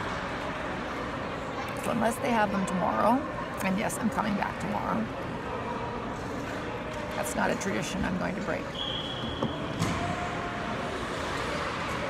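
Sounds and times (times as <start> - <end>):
shopping mall background noise: 0.0 - 12.0.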